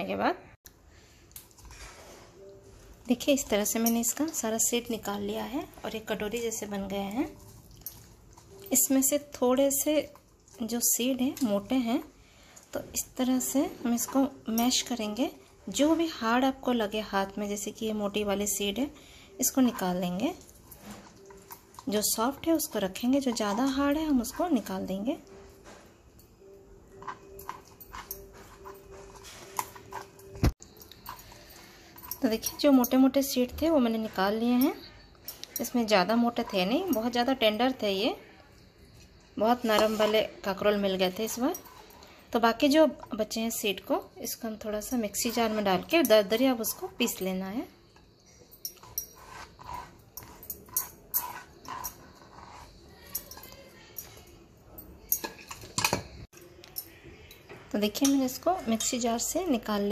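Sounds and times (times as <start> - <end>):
scraping seeds off a cutting board: 48.8 - 53.2.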